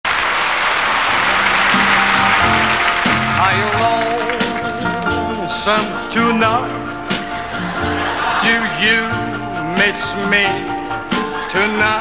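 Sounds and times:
studio audience applause: 0.0s - 5.3s
band music with low notes: 0.1s - 12.0s.

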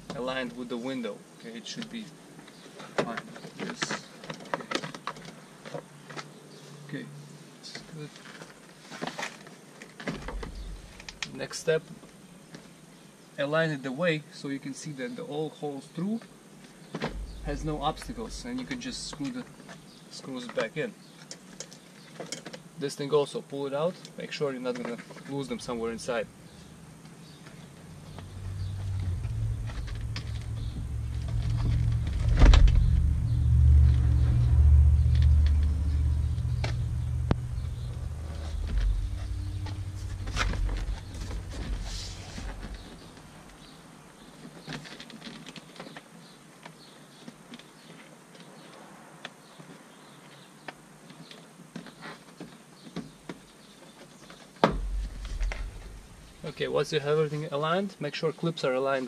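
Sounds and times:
low rumble: 10.2s - 11.3s, 17.0s - 19.3s, 27.8s - 43.7s, 54.7s - 56.6s.

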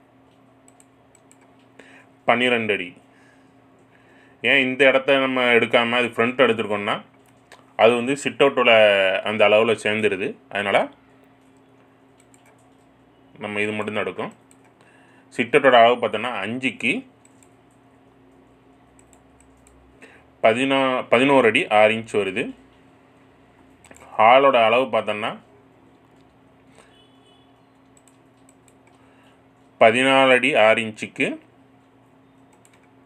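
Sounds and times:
low steady hum: 0.0s - 33.0s
computer keys clicking: 0.3s - 1.7s, 7.1s - 7.6s, 11.2s - 12.9s, 14.2s - 14.8s, 17.2s - 19.8s, 23.8s - 24.1s, 27.7s - 29.1s, 31.8s - 33.0s
keyboard typing: 0.3s - 1.7s, 11.2s - 13.0s, 14.2s - 14.8s, 17.2s - 19.8s, 23.6s - 24.2s, 27.6s - 29.8s, 31.8s - 33.0s
person speaking: 2.2s - 3.1s, 4.4s - 11.5s, 12.3s - 14.5s, 15.3s - 17.2s, 20.4s - 22.8s, 23.8s - 25.8s, 29.6s - 31.5s.

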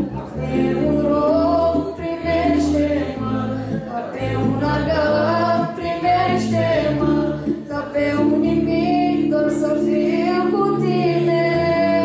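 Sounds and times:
held low backing notes: 0.0s - 12.0s
woman singing into microphone: 0.0s - 12.0s.

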